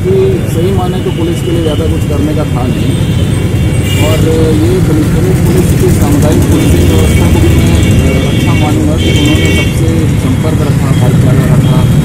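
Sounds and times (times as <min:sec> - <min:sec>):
man talking: 0:00.0 - 0:03.0, 0:03.8 - 0:12.0
road traffic rumble: 0:00.0 - 0:12.0.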